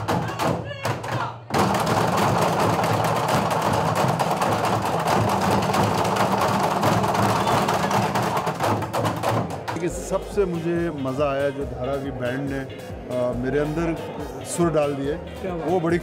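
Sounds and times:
drumming on plastic barrels: 0.0 - 11.4.

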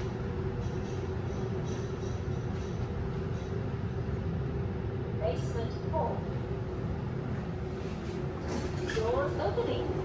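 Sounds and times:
elevator humming and rumbling: 0.0 - 10.0
recorded floor announcement: 5.1 - 6.4, 8.9 - 10.0.

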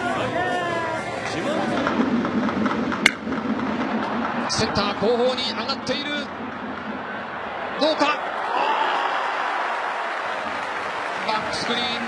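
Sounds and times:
ballpark crowd noise: 0.0 - 12.0
bat hitting baseball: 2.6 - 3.3.

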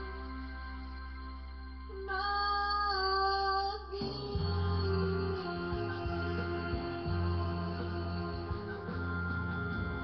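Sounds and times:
backing track with deep bass: 0.0 - 10.0.

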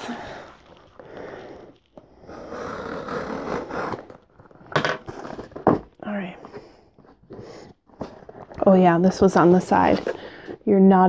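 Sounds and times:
cardboard box being opened: 2.4 - 8.6.

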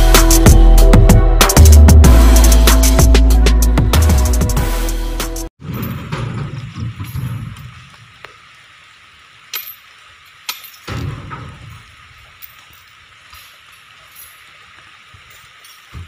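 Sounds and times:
rain hissing: 5.7 - 16.0.

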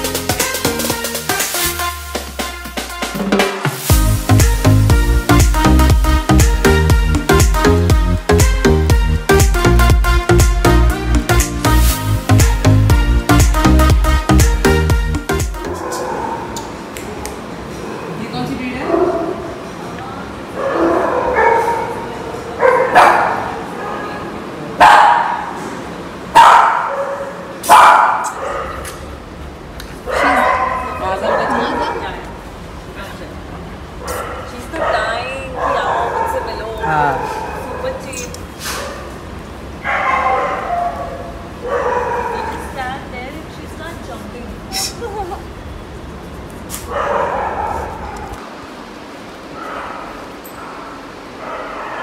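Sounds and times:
small dog barking: 20.6 - 25.6, 26.4 - 29.0, 30.0 - 32.2, 34.0 - 39.2, 39.8 - 42.8, 46.9 - 48.4
dog vocalizing: 34.1 - 38.9
small dog yipping: 44.7 - 45.1.

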